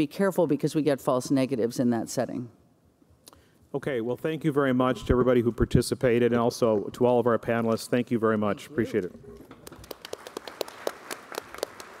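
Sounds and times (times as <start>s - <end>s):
sparse applause: 9.5s - 12.0s.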